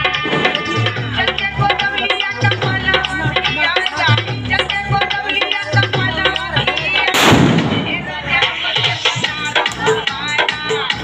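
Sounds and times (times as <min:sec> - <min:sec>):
loud dance music: 0:00.0 - 0:11.0
firecracker bang: 0:07.1 - 0:08.5.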